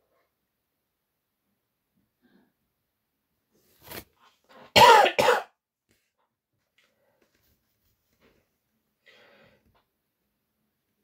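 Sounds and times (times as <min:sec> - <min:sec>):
person coughing: 0:04.8 - 0:05.6.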